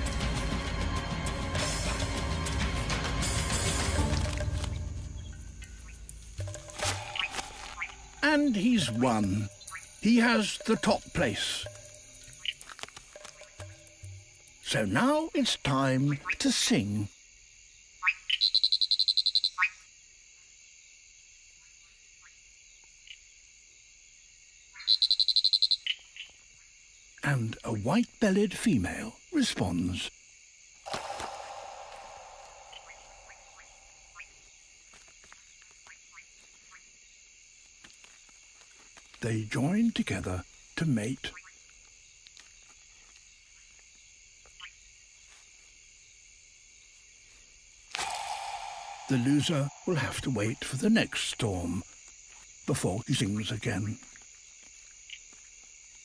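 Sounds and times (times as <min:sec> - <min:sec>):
insect chorus droning: 0:00.0 - 0:56.0
frog falling chirp: 0:03.9 - 0:14.6, 0:30.8 - 0:34.5, 0:47.9 - 0:51.8
frog rapid clicking call: 0:04.4 - 0:16.6, 0:18.0 - 0:19.9, 0:24.7 - 0:26.4, 0:30.8 - 0:34.5, 0:40.4 - 0:42.7, 0:44.4 - 0:44.8, 0:47.9 - 0:51.9
short rising call: 0:30.9 - 0:34.0, 0:47.9 - 0:50.8.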